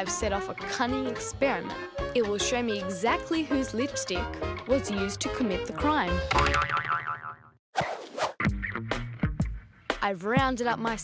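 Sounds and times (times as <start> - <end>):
children's tv music: 0.0 - 6.8
cartoon boing sound effect: 6.3 - 7.6.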